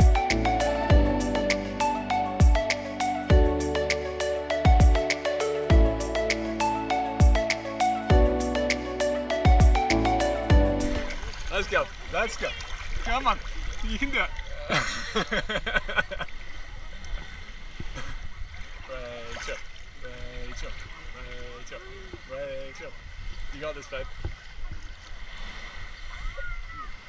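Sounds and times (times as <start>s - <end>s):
water lapping and splashing: 10.8s - 27.0s.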